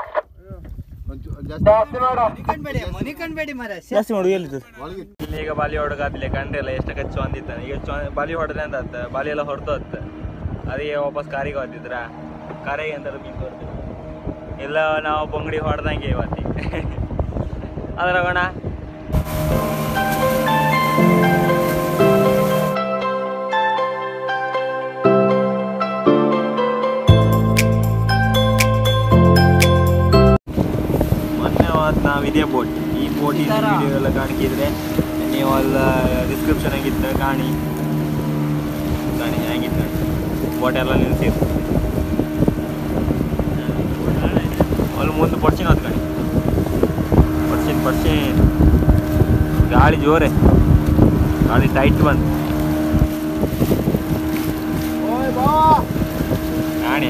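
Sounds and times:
wind buffeting microphone: 0:00.0 - 0:03.7, 0:05.2 - 0:22.8, 0:30.5 - 0:57.0
boat engine humming: 0:05.2 - 0:57.0
background music: 0:19.2 - 0:30.4.

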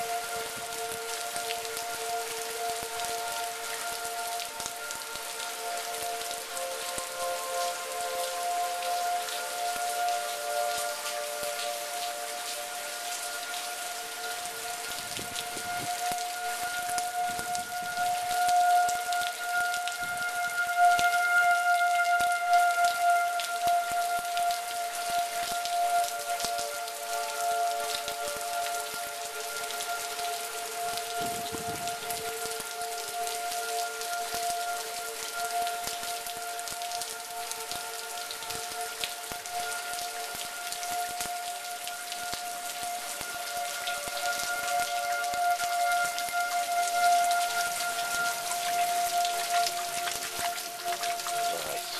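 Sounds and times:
rain pattering: 0:00.0 - 0:51.9
tornado warning sirens wailing: 0:00.0 - 0:51.9.

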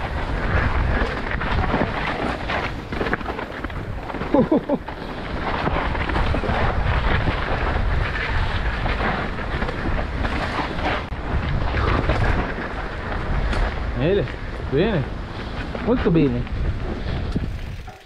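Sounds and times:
bike chattering over bumps: 0:00.0 - 0:14.2, 0:16.6 - 0:18.0
bike tyres crunching over dirt: 0:00.0 - 0:18.0
wind buffeting microphone: 0:00.0 - 0:18.0.

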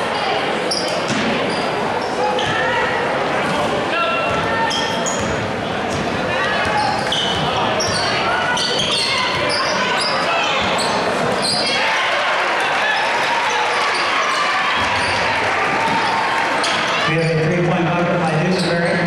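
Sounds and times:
crowd chatter and calls: 0:00.0 - 0:19.0
sneakers squeaking: 0:00.1 - 0:12.0, 0:12.9 - 0:17.4.

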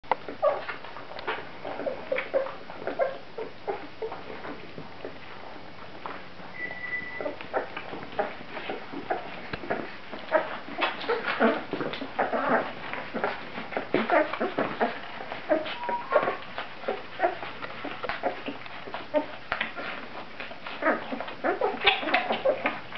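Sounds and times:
puppies squeaking and whimpering: 0:00.2 - 0:05.2, 0:06.5 - 0:22.9.

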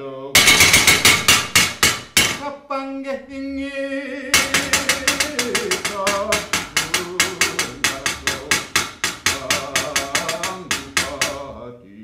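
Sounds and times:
sharp rhythmic wooden knocks: 0:00.4 - 0:02.4, 0:04.4 - 0:11.5
man singing held note: 0:02.4 - 0:12.0.

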